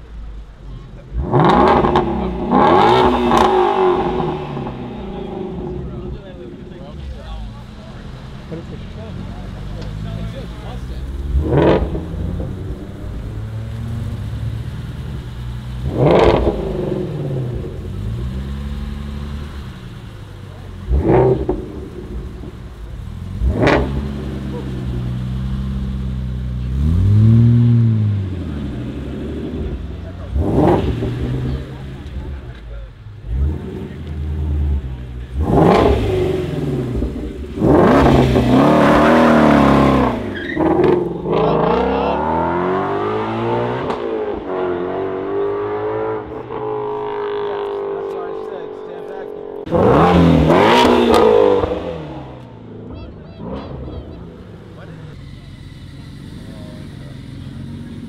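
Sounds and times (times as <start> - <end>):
car engines revving: 0.0 - 58.0
car accelerating loudly: 0.4 - 58.0.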